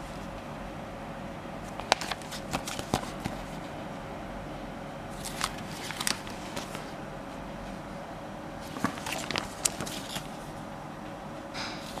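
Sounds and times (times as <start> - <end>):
plastic sleeves and paper rustling: 1.6 - 3.7, 5.2 - 7.0, 8.6 - 10.5.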